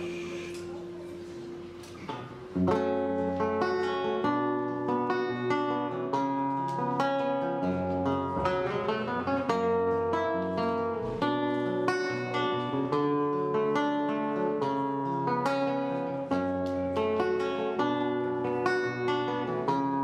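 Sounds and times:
classical guitar fingerstyle: 0.0 - 20.0.

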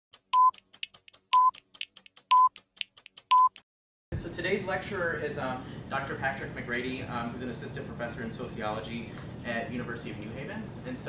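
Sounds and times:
countdown beeps: 0.4 - 0.6, 1.3 - 1.6, 2.3 - 2.6.

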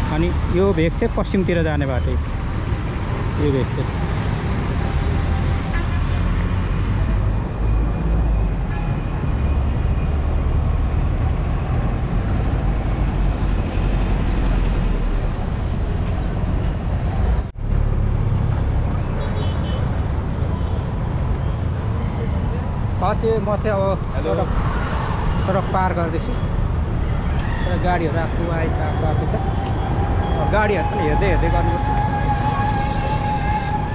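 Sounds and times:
street traffic rumbling: 0.0 - 33.9.

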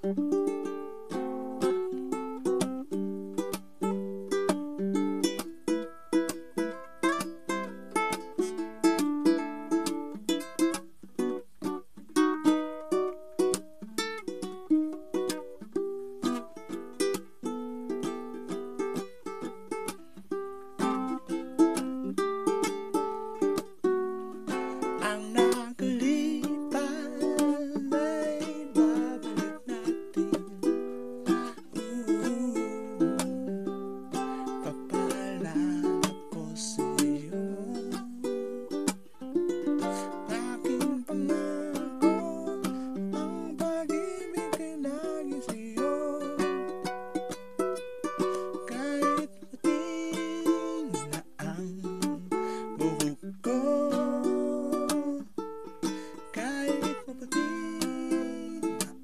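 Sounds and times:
ukulele strummed chords: 0.0 - 59.0
person singing: 20.8 - 59.0.

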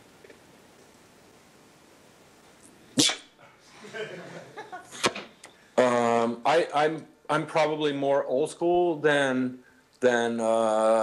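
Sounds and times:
person sneezing: 3.0 - 3.4.

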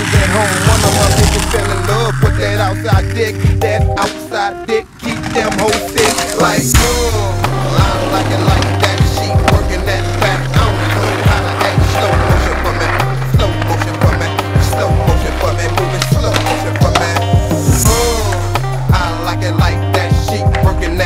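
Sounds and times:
hip-hop beat: 0.0 - 21.0
skateboard rolling on concrete: 0.0 - 21.0.

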